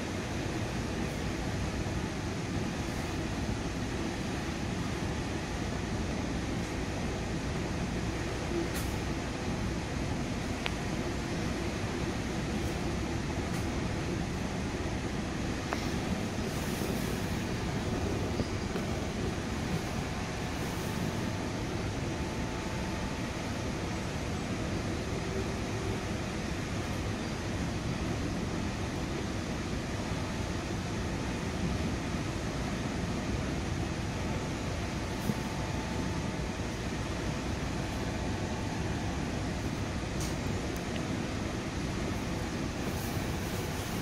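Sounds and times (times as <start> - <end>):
train wheels rumbling on rail: 0.0 - 44.0.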